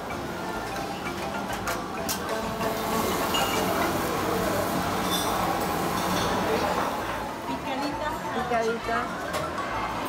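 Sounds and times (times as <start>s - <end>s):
restaurant kitchen griddle noise: 0.0s - 10.0s.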